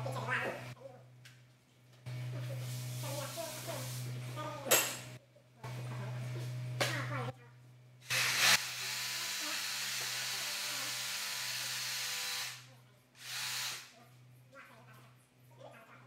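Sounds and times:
electric power saw cutting: 0:08.0 - 0:13.9.

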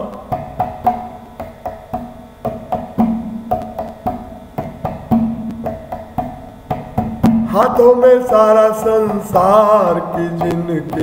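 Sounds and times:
sharp drum strokes: 0:00.0 - 0:11.0.

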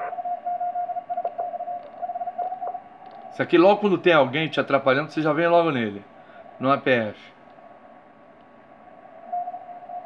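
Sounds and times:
morse code beeps: 0:00.0 - 0:02.7
faint radio band hiss: 0:00.0 - 0:10.0.

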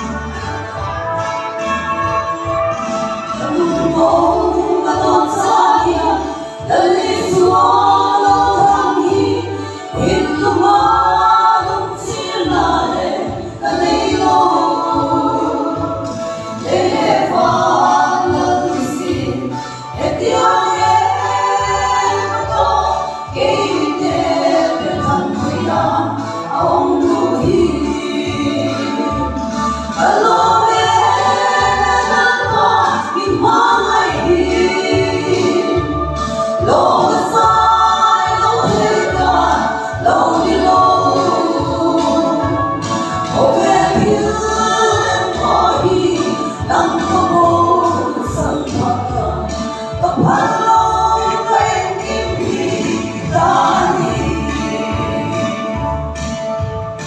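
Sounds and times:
women singing in harmony: 0:00.0 - 0:57.0.

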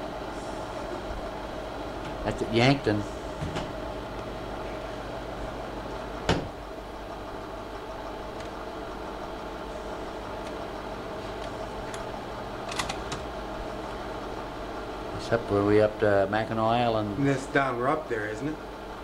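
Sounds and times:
projector fan and motor hum: 0:00.0 - 0:19.0.

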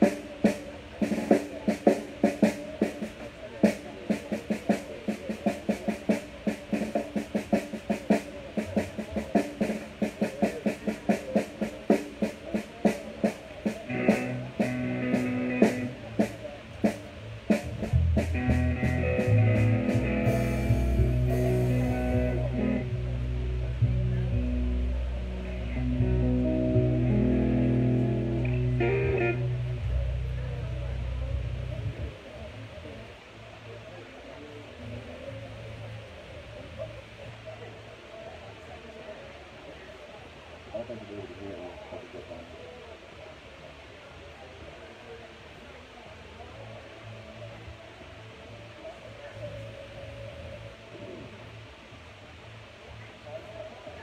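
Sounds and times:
drum hits: 0:00.0 - 0:22.6
electric guitar chords: 0:13.7 - 0:16.4, 0:17.5 - 0:32.1
electric bass notes: 0:13.9 - 0:16.0, 0:17.4 - 0:32.1.

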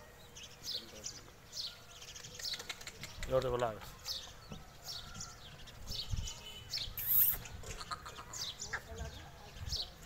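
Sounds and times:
birds chirping: 0:00.0 - 0:10.0
brief loud hiss: 0:07.0 - 0:07.5.

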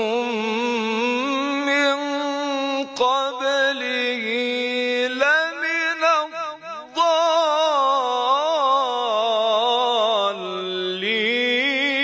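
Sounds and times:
man chanting melodic recitation: 0:00.0 - 0:12.0.

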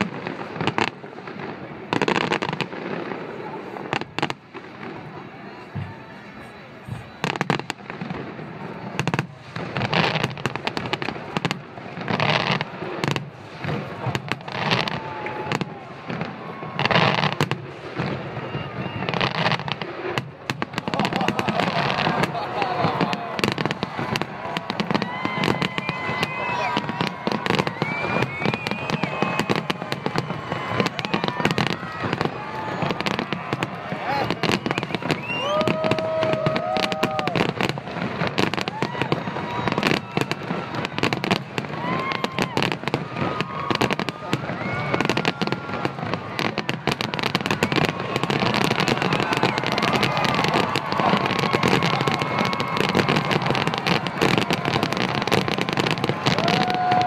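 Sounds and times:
fireworks bursting: 0:00.0 - 0:57.0.

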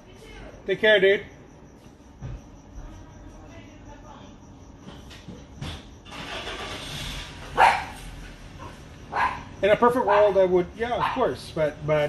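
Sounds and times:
dog barking sharply: 0:07.6 - 0:08.0, 0:09.1 - 0:09.5, 0:10.1 - 0:10.4, 0:11.0 - 0:11.2.

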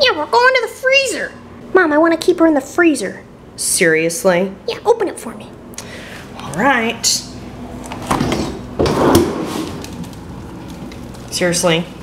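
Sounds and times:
freezer drawer sliding open: 0:08.0 - 0:09.9.

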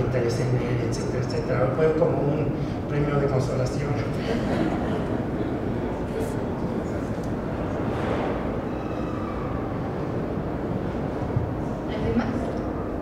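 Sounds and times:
exhibition hall rumble and murmur: 0:00.0 - 0:13.0.

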